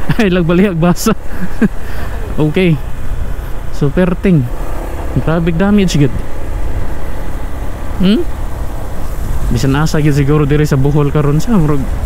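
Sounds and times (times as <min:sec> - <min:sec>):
motorcycle engine: 0:00.0 - 0:12.0
road noise: 0:00.0 - 0:12.0
wind rushing over microphone: 0:01.1 - 0:12.0.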